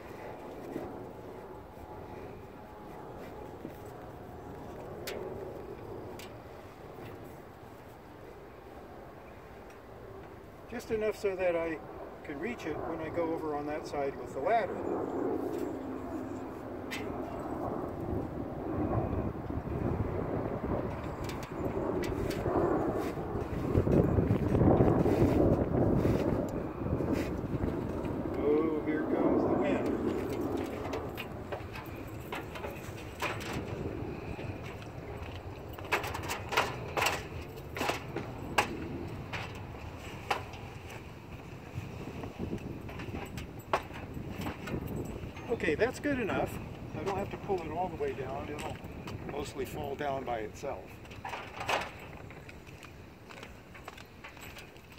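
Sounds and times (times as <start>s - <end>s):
ladder clicks and knocks: 35.8s - 39.6s.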